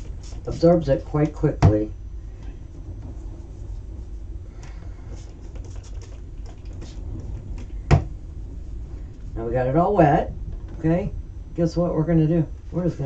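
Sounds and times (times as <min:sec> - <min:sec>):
steady low hum: 0:00.0 - 0:13.0
fingers rubbing damp cardstock: 0:05.0 - 0:07.8.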